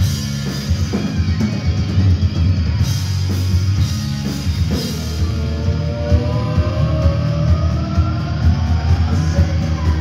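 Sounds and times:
drums and bass pulsing: 0.0 - 10.0
hard rock band playing live: 0.0 - 10.0.

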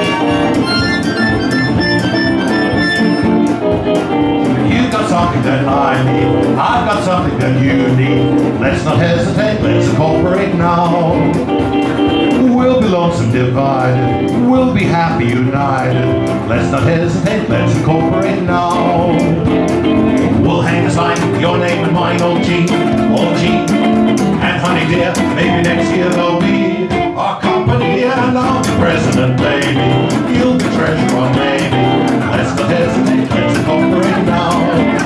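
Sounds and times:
acoustic guitar strumming: 0.0 - 35.0
banjo: 27.6 - 35.0.

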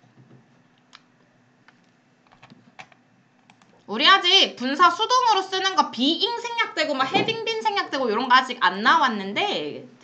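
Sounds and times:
computer clicks: 1.7 - 3.7.

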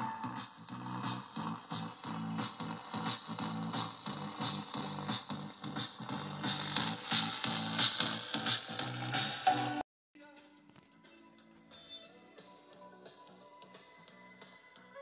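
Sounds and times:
music from radio speaker: 0.0 - 15.0.

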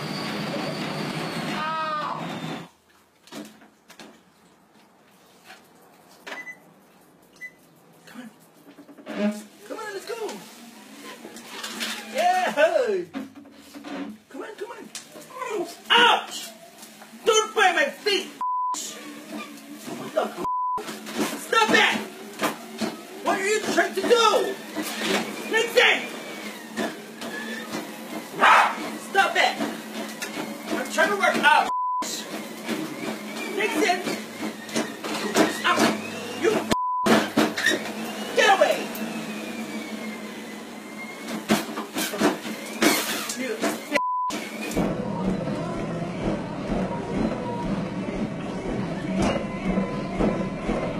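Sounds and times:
treadmill motor hum and whine: 0.0 - 2.8, 15.2 - 50.9
excited shouts: 1.5 - 2.3
censor bleeps: 18.4 - 18.8, 36.8 - 37.1, 44.0 - 44.4
feet thumping on treadmill belt: 41.4 - 50.9.

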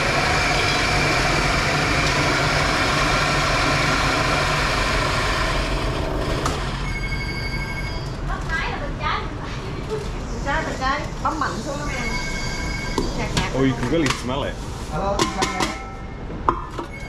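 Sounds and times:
coffee grinder grinding beans: 0.0 - 6.9.

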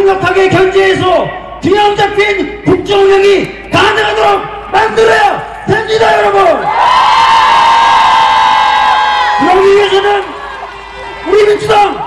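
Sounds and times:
crowd cheering: 6.4 - 12.0.

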